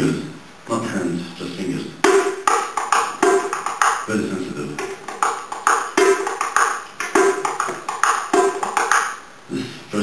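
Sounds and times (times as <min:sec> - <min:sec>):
goblet drum played with fingers: 0:02.0 - 0:04.1, 0:04.8 - 0:09.2.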